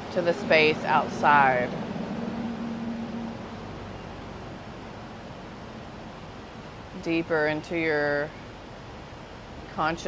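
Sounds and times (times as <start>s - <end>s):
low hum: 0.0s - 7.4s
outdoor background hiss: 0.0s - 10.0s.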